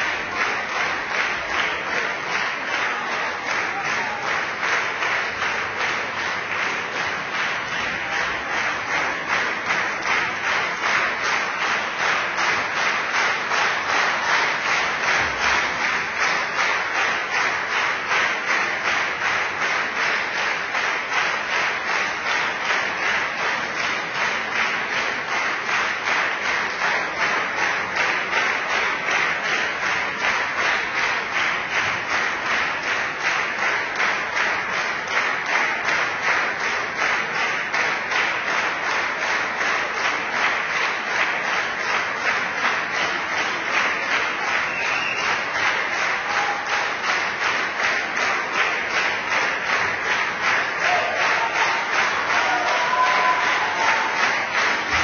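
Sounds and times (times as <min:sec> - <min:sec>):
audience clapping in unison: 0:00.0 - 0:55.0.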